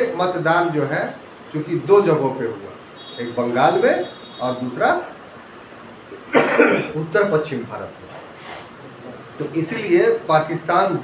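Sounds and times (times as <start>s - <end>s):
man coughing: 6.3s - 7.0s.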